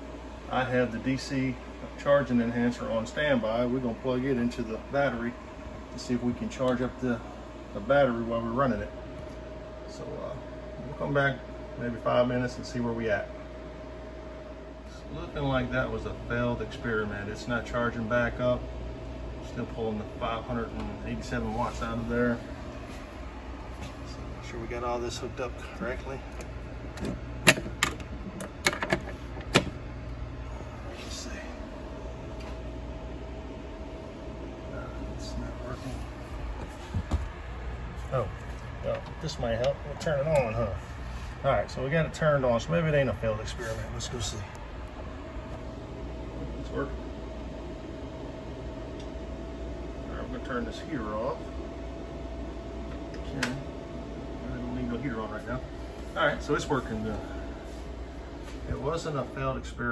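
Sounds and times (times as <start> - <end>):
steady low hum: 0.0 - 59.9
man speaking: 24.1 - 26.4, 34.7 - 36.1, 41.4 - 44.6
faint high whine: 30.2 - 59.9.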